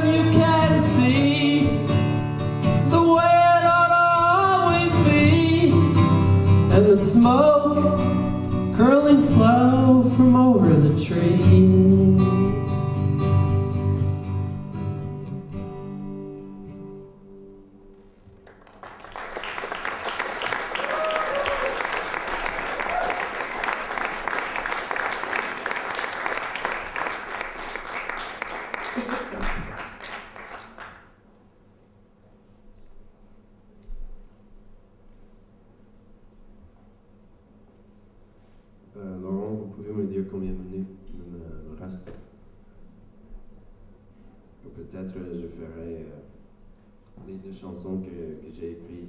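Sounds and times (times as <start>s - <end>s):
man singing: 0.0s - 2.1s, 2.8s - 12.7s
strummed acoustic guitar: 0.0s - 18.0s
audience applause: 18.4s - 31.1s.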